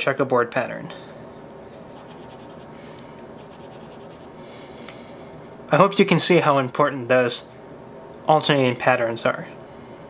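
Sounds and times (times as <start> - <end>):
pen scribbling on paper: 2.0 - 2.7, 3.4 - 4.4.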